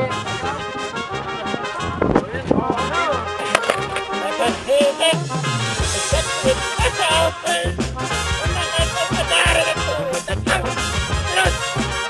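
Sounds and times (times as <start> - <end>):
people's voices: 3.4 - 7.8, 8.4 - 11.7.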